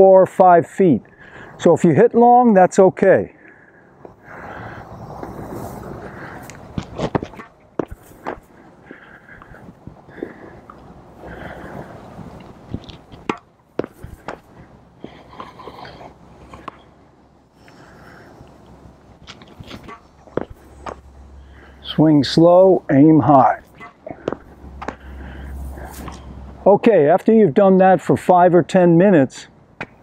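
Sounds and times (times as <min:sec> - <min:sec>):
outdoor background hiss: 0:00.0 - 0:30.0
racket hitting ball: 0:06.8 - 0:08.5, 0:12.8 - 0:14.6, 0:16.6 - 0:16.9, 0:19.3 - 0:21.1, 0:23.6 - 0:25.1
tennis ball bouncing: 0:12.8 - 0:14.6, 0:16.6 - 0:16.9, 0:23.7 - 0:25.1.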